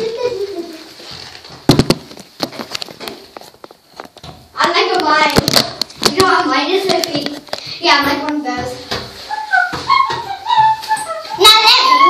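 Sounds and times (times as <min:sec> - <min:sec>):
child singing: 0:07.9 - 0:12.0.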